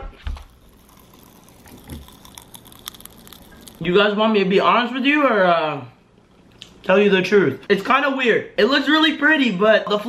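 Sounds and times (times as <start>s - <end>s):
person chewing food: 0.2s - 3.8s
tiny crackling candy pops: 0.4s - 3.9s.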